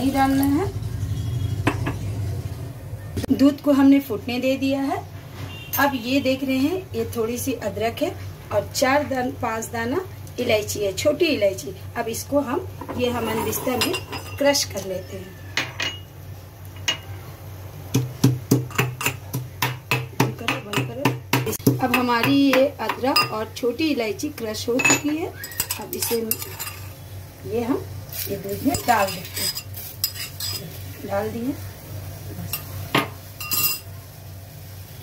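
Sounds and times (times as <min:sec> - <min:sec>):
metal clinking against steel pot: 0:12.9 - 0:14.6, 0:15.6 - 0:16.1, 0:18.7 - 0:23.5, 0:24.7 - 0:27.0, 0:28.6 - 0:30.7, 0:32.5 - 0:33.9.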